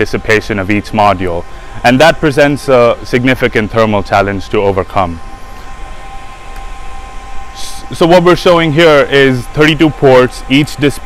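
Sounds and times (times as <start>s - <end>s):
faint steady tones: 0.0s - 11.0s.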